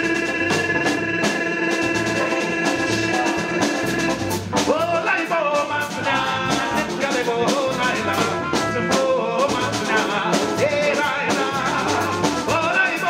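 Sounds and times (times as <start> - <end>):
drum kit beat: 0.0 - 13.0
singers wordless vocals: 0.0 - 13.0.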